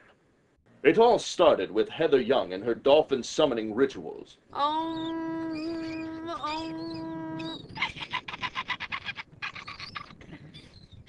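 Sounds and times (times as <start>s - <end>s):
woman chanting held tone: 4.6s - 7.6s.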